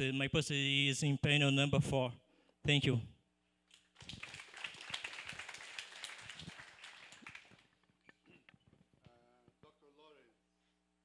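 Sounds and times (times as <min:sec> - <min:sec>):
audience applauding: 0:03.9 - 0:07.8.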